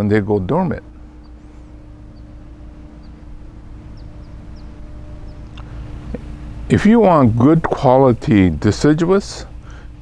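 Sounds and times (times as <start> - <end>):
small birds chirping: 0.0 - 7.6
low mechanical hum: 0.0 - 10.0.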